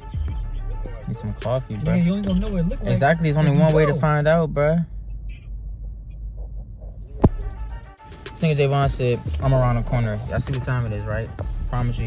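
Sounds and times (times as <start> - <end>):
car engine rumble in cabin: 1.9 - 7.4.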